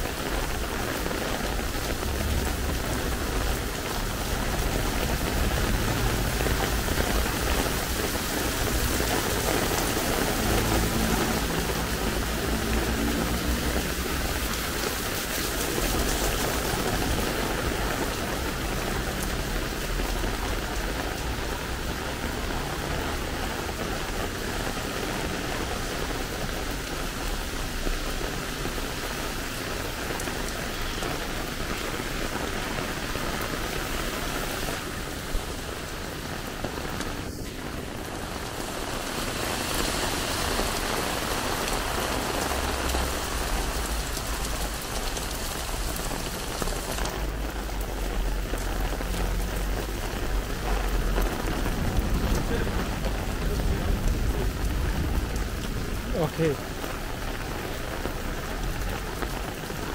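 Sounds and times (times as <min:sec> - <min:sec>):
heavy rain on pavement: 0:00.0 - 0:59.9.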